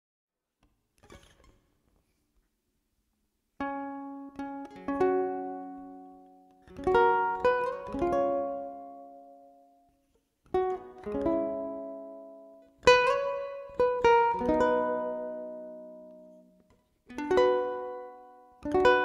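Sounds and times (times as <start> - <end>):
ukulele plucked melody: 3.6 - 9.9, 10.5 - 19.0.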